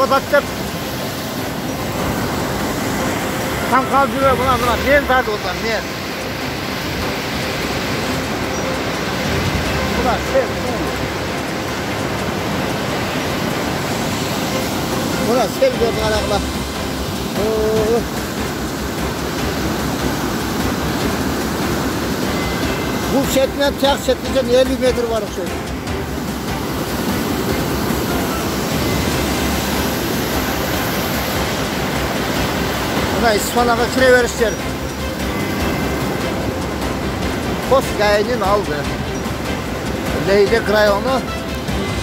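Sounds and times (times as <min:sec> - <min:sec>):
muddy floodwater rushing: 0:00.0 - 0:42.0
man's voice: 0:03.7 - 0:05.9, 0:15.2 - 0:16.5, 0:17.3 - 0:18.1, 0:23.1 - 0:25.5, 0:40.1 - 0:41.2.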